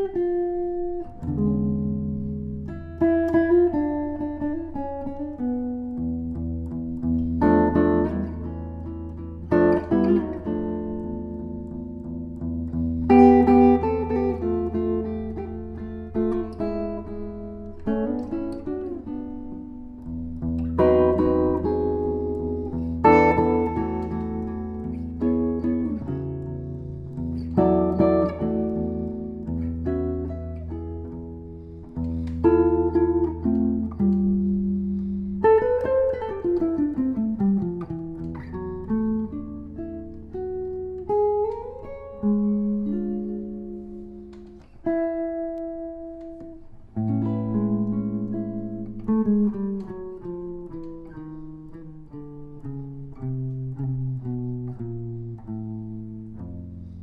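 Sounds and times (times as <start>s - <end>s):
solo jazz guitar: 0.0s - 57.0s.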